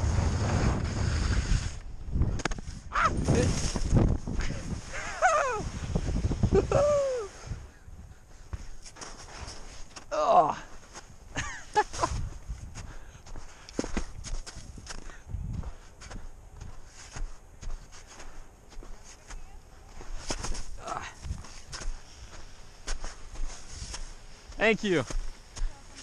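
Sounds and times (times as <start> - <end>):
skis crunching in powder snow: 0.0 - 26.0
person laughing: 6.5 - 7.3, 11.4 - 12.2.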